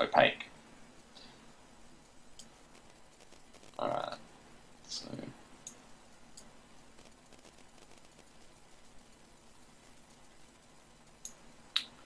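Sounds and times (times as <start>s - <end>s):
low room hiss: 0.0s - 12.0s
faint sharp clicks: 2.0s - 2.6s.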